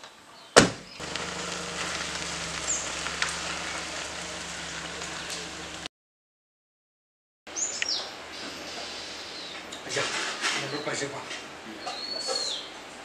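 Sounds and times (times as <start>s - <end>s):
small car engine idling: 1.0s - 5.9s.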